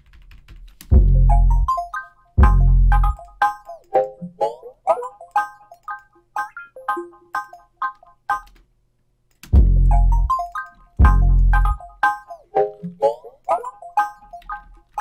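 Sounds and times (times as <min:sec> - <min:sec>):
chopped melodic sample stabs: 0:01.1 - 0:05.6, 0:09.6 - 0:14.4.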